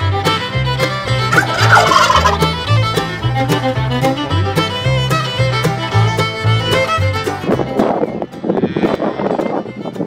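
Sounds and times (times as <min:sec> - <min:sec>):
fiddle music with steady beat: 0:00.0 - 0:10.0
turkey gobbling: 0:01.3 - 0:02.6.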